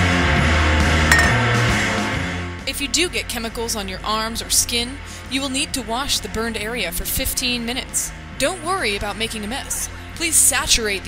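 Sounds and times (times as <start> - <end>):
glass clink: 1.1 - 1.6.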